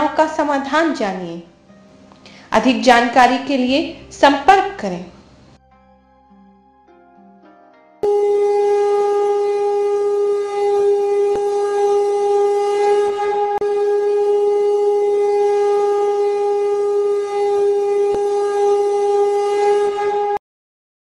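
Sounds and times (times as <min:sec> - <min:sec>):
loud steady drone note: 0:08.0 - 0:20.4.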